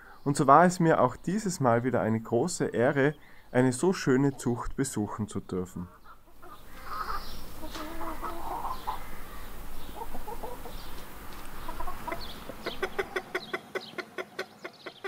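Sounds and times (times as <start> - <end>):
chickens clucking softly: 5.8 - 15.0.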